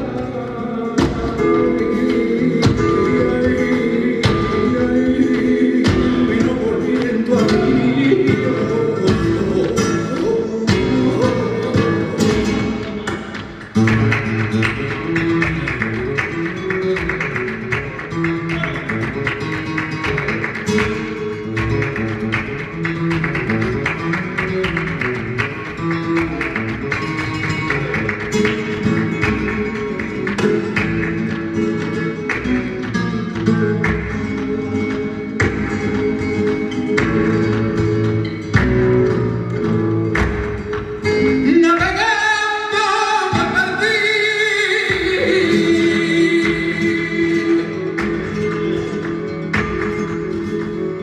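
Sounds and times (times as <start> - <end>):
man singing flamenco: 0.0 - 51.0
plucked acoustic guitar: 0.0 - 51.0.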